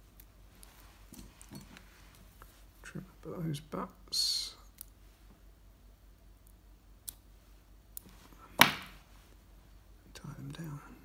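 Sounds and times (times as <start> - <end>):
person speaking: 2.8 - 4.8, 10.0 - 11.0.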